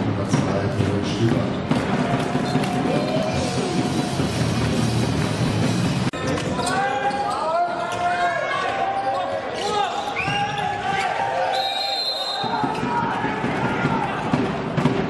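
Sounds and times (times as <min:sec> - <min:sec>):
players and spectators voices: 0:00.0 - 0:15.0.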